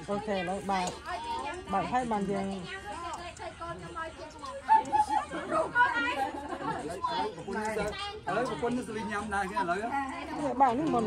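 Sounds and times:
people talking at once: 0.0s - 11.0s.

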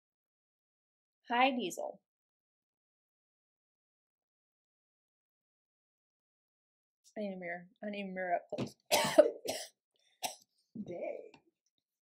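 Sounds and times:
woman coughing: 8.9s - 10.4s.

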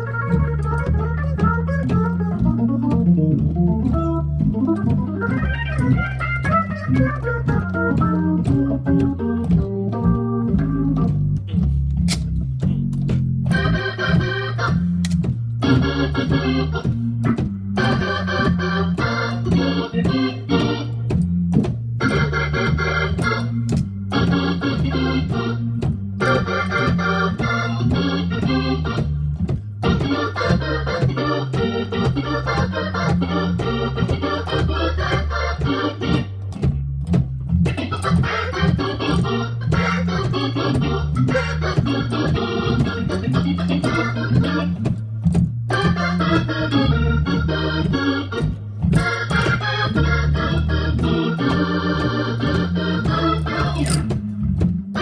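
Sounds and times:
jazz organ playing: 0.0s - 55.0s.

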